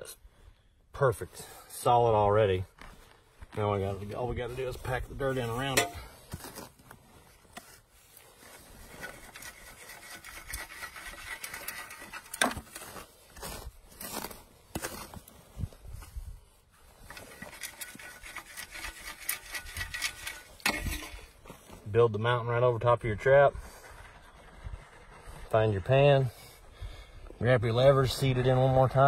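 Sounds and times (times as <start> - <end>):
soil scraping through wire sifter: 7.7 - 15.3, 16.8 - 21.4.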